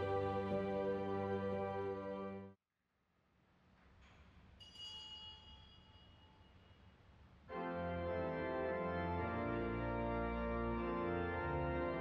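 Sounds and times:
small bell ringing: 4.6s - 6.8s.

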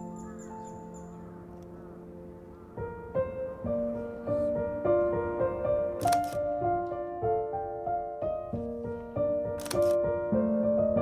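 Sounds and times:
piano music: 0.0s - 11.0s
camera shutter click: 6.0s - 6.4s, 9.6s - 10.0s.

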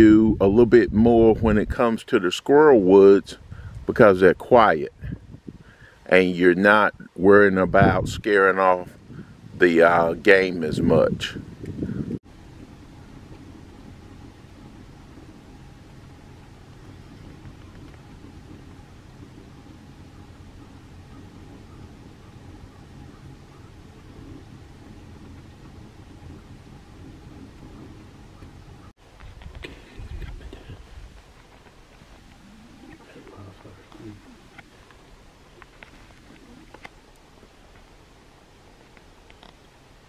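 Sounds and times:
low outdoor rumble: 0.0s - 40.0s
faint thin hum: 11.3s - 39.8s.

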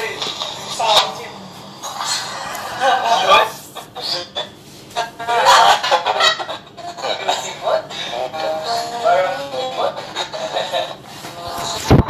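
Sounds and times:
excited voices: 2.2s - 10.8s.

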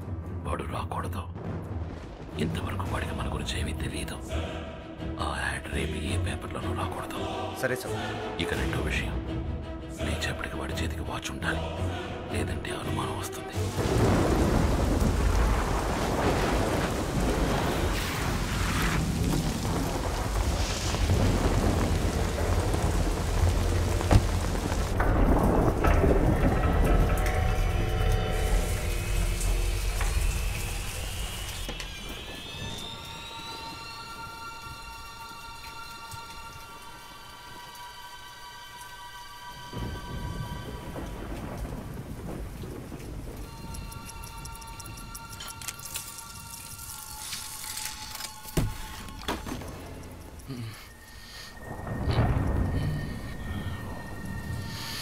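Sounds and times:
rain: 0.0s - 11.9s, 12.5s - 55.0s
low thunder rumble: 13.6s - 33.8s, 39.7s - 45.2s, 51.6s - 55.0s.

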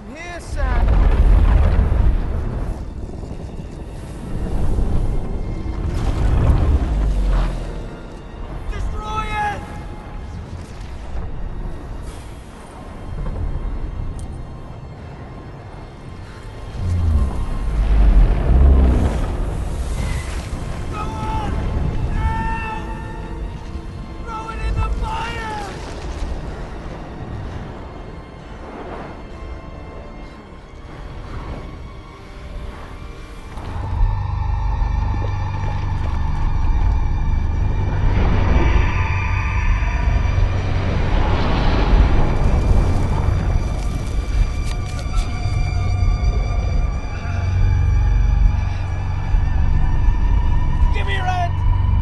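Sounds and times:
volcanic eruption rumble: 0.4s - 8.8s, 9.7s - 52.0s.

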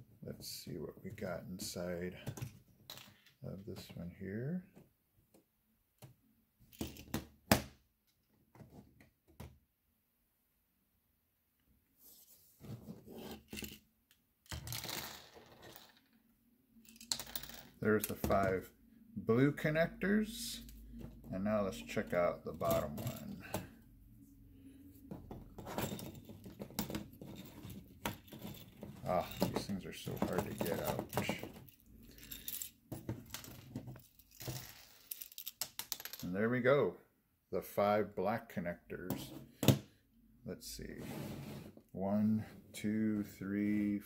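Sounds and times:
plastic parts clicking and knocking: 2.2s - 4.0s, 25.0s - 36.1s.

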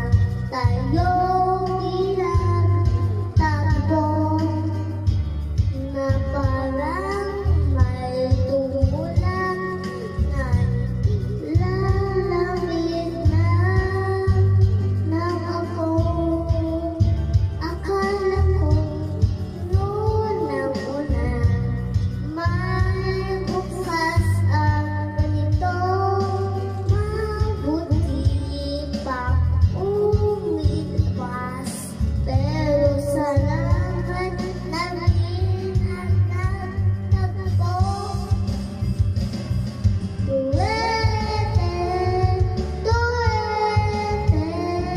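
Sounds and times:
boy singing into microphone: 0.0s - 38.6s, 40.2s - 44.9s
backing music: 0.0s - 44.9s.

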